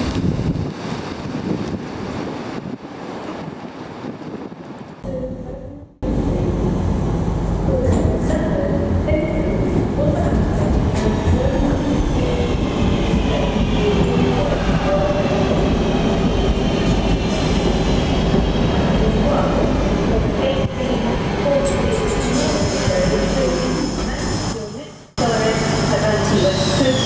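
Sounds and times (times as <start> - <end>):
wheels rumbling on rail: 0.0 - 27.0.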